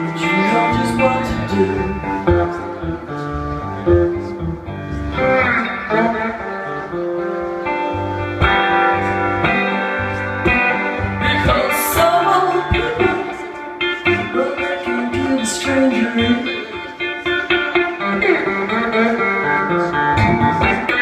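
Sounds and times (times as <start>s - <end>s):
low bass notes: 0.0s - 13.4s, 18.4s - 21.0s
electric guitar playing blues: 0.0s - 21.0s
woman singing: 11.1s - 16.9s.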